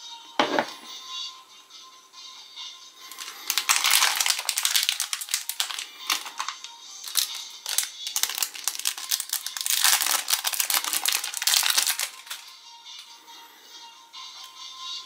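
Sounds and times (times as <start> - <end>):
background music: 0.0 - 15.0
plastic wrappers crinkling: 3.1 - 12.5.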